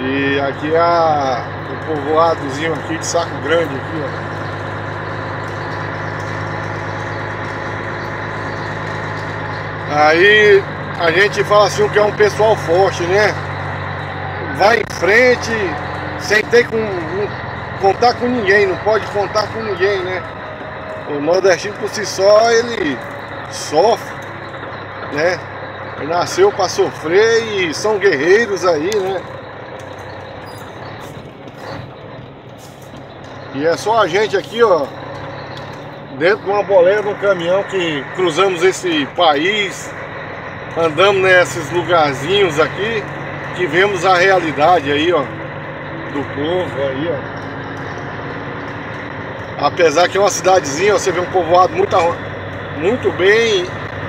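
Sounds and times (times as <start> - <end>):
truck engine running: 0.0 - 54.0.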